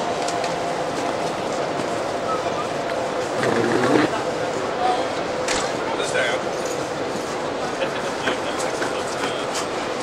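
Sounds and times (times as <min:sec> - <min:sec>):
train coaches rolling slowly: 0:00.0 - 0:10.0.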